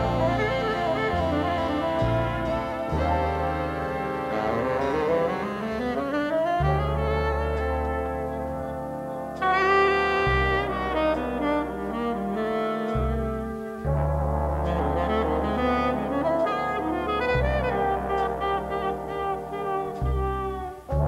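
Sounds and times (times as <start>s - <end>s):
bass notes: 0.0s - 21.0s
brass sustained chords: 0.0s - 21.0s
jazz big band slow ballad: 0.0s - 21.0s.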